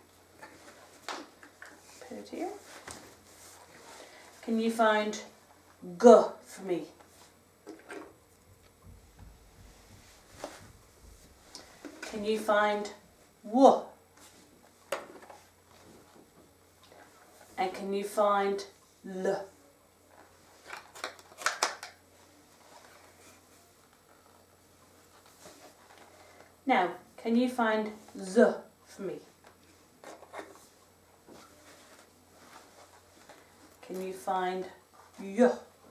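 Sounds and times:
faint room noise: 0.0s - 35.9s
soft taps and rustles: 0.4s - 3.9s, 7.0s - 12.2s.

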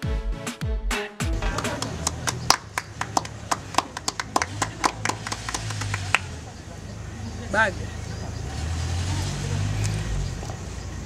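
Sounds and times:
music: 0.0s - 3.8s.

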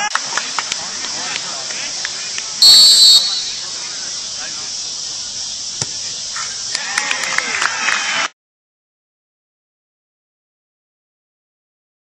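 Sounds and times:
faint voices: 0.0s - 8.3s
sports whistle blast: 2.6s - 3.8s.

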